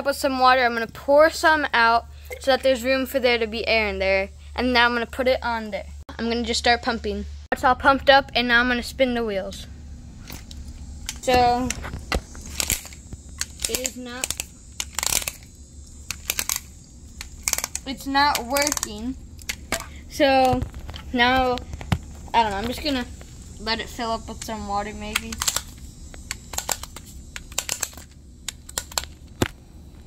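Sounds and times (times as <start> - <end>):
air engine spurting hiss: 9.6 - 28.0
toy car plastic clicks: 12.4 - 20.5, 24.3 - 29.4.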